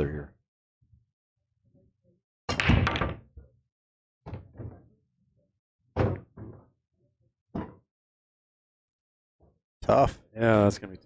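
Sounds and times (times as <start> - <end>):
pool balls knocking: 7.5 - 7.8.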